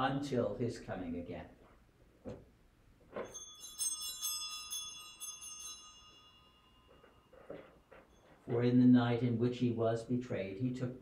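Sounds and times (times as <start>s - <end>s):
small bells shaken: 3.2s - 8.5s.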